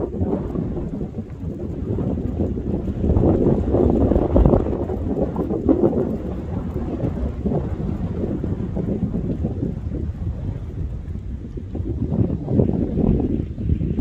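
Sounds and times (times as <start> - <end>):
wind buffeting microphone: 0.0 - 14.0.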